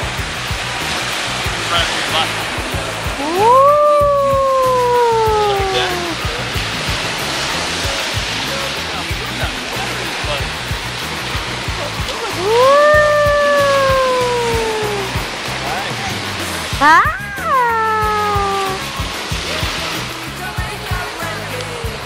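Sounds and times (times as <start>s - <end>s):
ocean surf washing: 0.0s - 22.0s
high-pitched sliding voice call: 3.2s - 6.2s, 12.4s - 15.1s, 16.8s - 18.9s.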